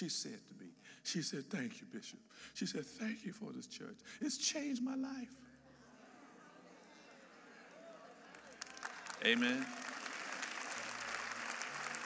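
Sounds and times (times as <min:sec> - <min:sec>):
congregation applauding: 0:07.7 - 0:12.0.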